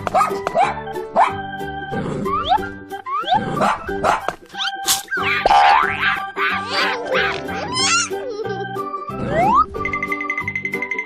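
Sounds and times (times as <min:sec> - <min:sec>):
cartoon background music: 0:00.0 - 0:11.0
cartoon animal cries: 0:04.5 - 0:08.2.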